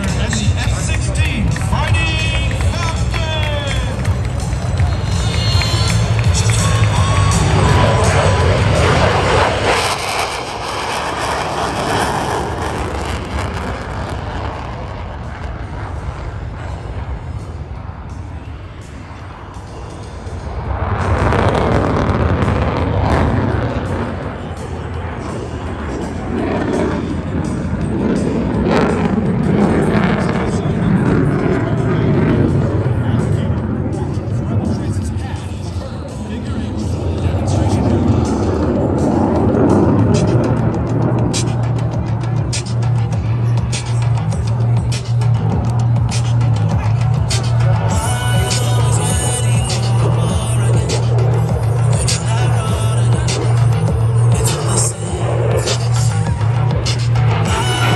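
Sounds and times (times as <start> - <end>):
jet engine rumble: 0.0 - 57.9
music over public-address system: 0.0 - 57.9
voices: 30.4 - 40.6, 41.3 - 57.9.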